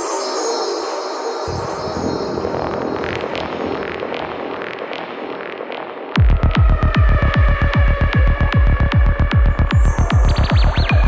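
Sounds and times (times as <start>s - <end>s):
fast kick drum: 6.2s - 11.0s
rolling bassline: 6.2s - 11.0s.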